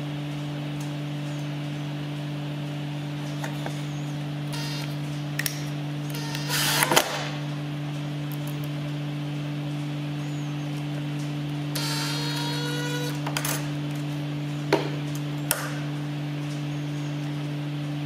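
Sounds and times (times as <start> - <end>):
steady low hum: 0.0 - 18.0
cordless drill whining: 4.5 - 5.0, 6.1 - 7.0, 11.8 - 13.2.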